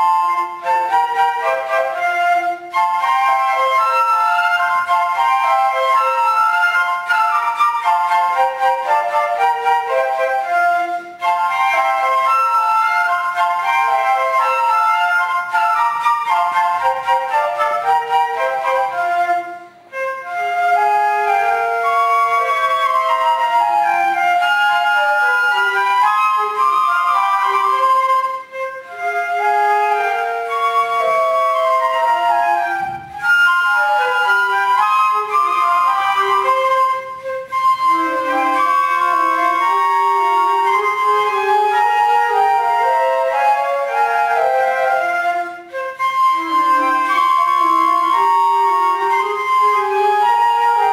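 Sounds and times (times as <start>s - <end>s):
flutes playing classical piece: 0.0s - 50.9s.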